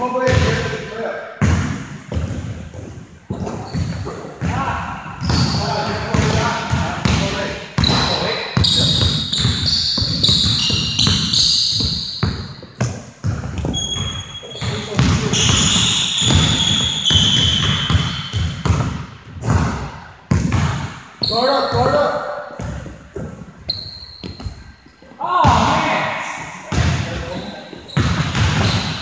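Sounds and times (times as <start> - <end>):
basketball bouncing on hardwood floor: 1.4 - 4.6, 5.2 - 21.0, 22.6 - 24.6, 28.0 - 29.0
sneaker squeaks: 2.1 - 7.2, 7.8 - 19.7, 20.4 - 25.7, 26.3 - 29.0.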